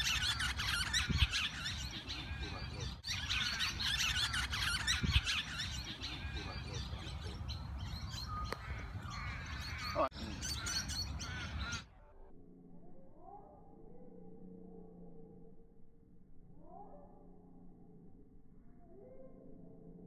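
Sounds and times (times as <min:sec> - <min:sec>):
birds chirping: 0:00.0 - 0:11.9.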